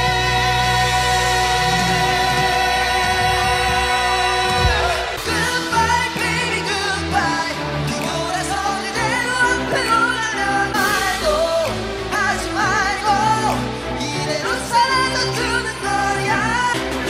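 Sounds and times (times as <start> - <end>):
male group singing pop: 0.0 - 17.0
pop backing track with bass: 0.0 - 17.0.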